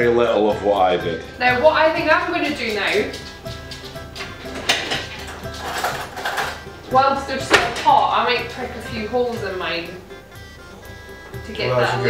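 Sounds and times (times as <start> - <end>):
background music: 0.0 - 12.0
cutlery rattling: 1.7 - 8.4
kitchen drawer opening: 4.2 - 6.7, 7.4 - 8.1.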